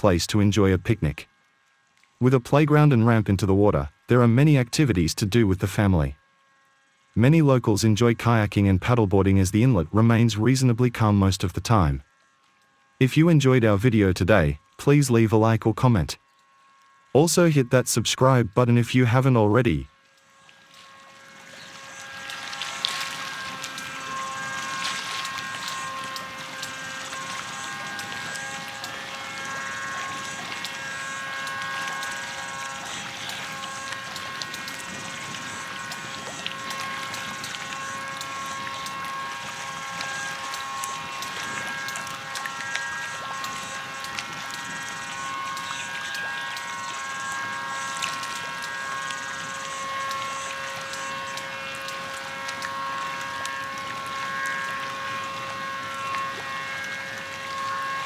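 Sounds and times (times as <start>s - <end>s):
steady hum of held tones: 0.0s - 58.0s
choppy water: 20.3s - 58.0s.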